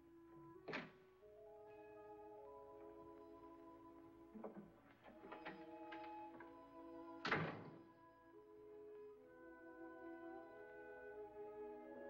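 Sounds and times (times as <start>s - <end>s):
orchestral music sustained tones: 0.0s - 12.0s.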